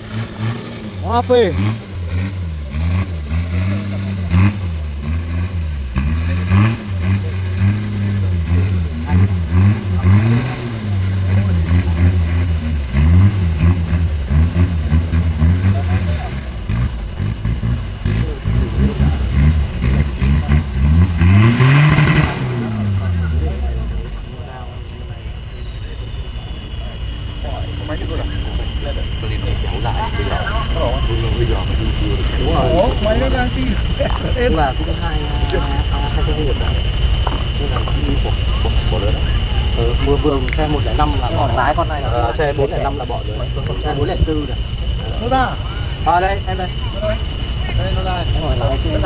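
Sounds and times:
engine revving hard: 0:00.0 - 0:49.0
faint high whine: 0:00.0 - 0:49.0.

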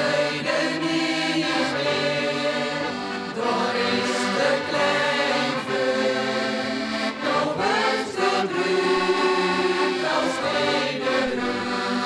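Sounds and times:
accordions holding chords: 0:00.0 - 0:12.0
folk choir singing: 0:00.0 - 0:12.0.

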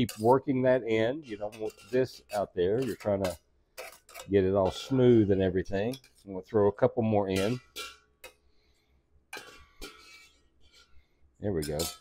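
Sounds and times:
metal spoon clinking on cookware: 0:00.0 - 0:00.5, 0:01.2 - 0:06.3, 0:07.3 - 0:08.5, 0:09.3 - 0:11.0, 0:11.6 - 0:12.0.

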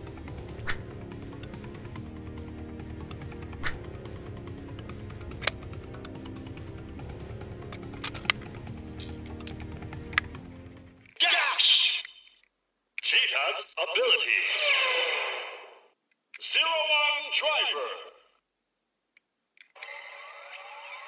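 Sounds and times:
background music: 0:00.0 - 0:11.2
toy electronic voice and effects: 0:11.2 - 0:12.4, 0:16.4 - 0:18.2, 0:19.7 - 0:21.0.

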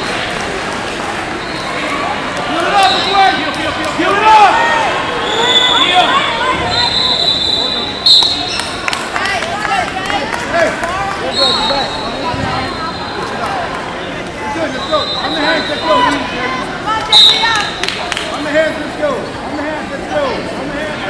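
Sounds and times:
referee's whistle blasts: 0:06.6 - 0:08.7, 0:11.3 - 0:13.1, 0:14.8 - 0:16.2, 0:17.1 - 0:17.6.

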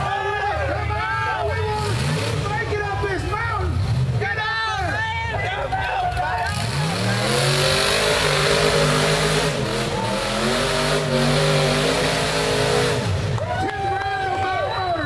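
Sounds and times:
engine revving hard: 0:01.7 - 0:02.7, 0:06.4 - 0:13.4.

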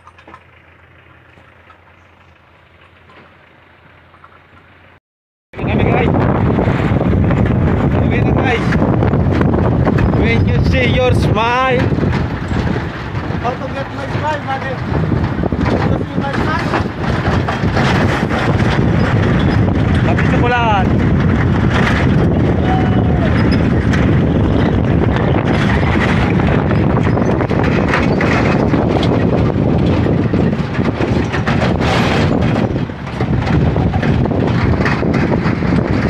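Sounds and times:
truck engine running: 0:00.0 - 0:05.0, 0:05.6 - 0:36.0
wind buffeting microphone: 0:05.5 - 0:36.0.

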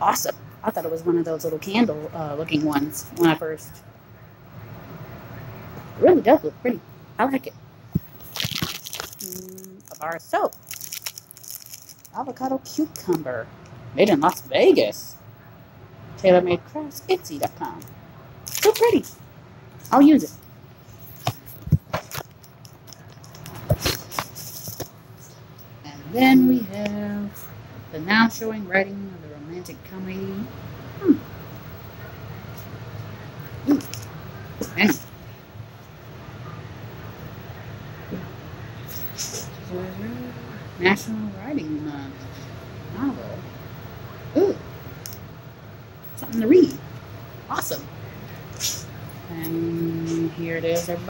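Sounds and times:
low background hum: 0:00.0 - 0:51.0.

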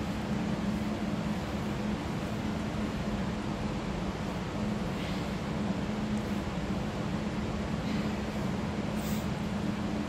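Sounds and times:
electric fan humming: 0:00.0 - 0:10.0.

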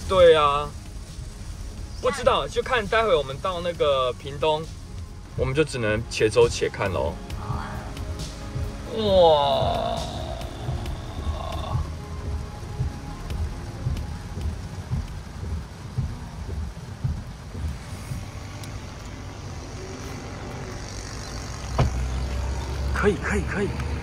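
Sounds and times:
heavy rain on car roof: 0:00.0 - 0:24.0
tyre and road noise: 0:00.0 - 0:24.0.

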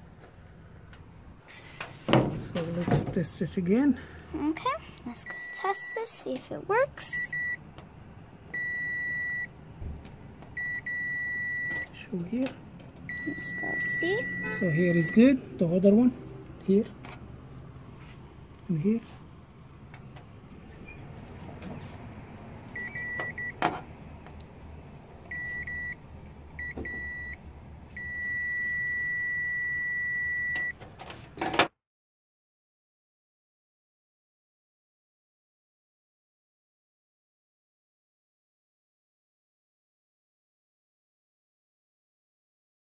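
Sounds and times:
multimeter beeps: 0:05.2 - 0:06.1, 0:07.0 - 0:07.6, 0:08.5 - 0:09.5, 0:10.6 - 0:12.0, 0:13.1 - 0:15.2, 0:22.4 - 0:24.2, 0:25.3 - 0:26.0, 0:26.6 - 0:27.4, 0:28.0 - 0:30.8.

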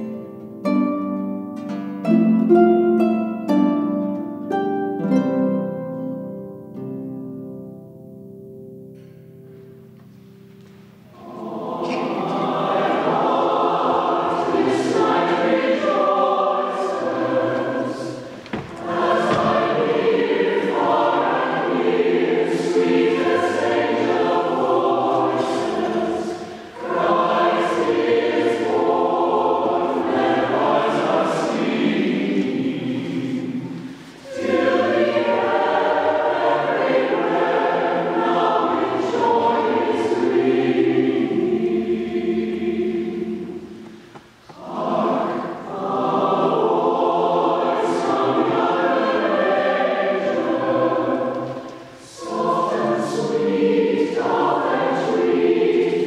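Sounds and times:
choir singing: 0:00.0 - 0:06.1, 0:09.8 - 0:56.0.

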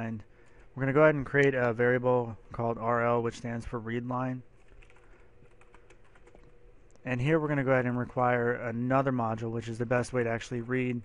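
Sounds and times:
typing on computer keyboard: 0:04.6 - 0:06.5.

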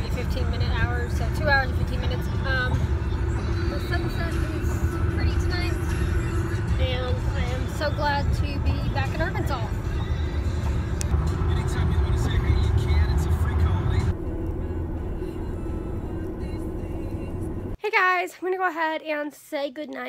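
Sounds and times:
car cabin road and engine rumble: 0:00.0 - 0:17.8
music playing: 0:00.0 - 0:17.8.

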